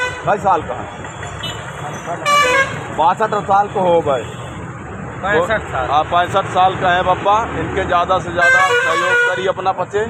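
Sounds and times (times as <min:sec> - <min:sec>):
street traffic: 0:00.0 - 0:10.0
vehicle horn tooting: 0:01.4 - 0:02.9, 0:08.4 - 0:09.6.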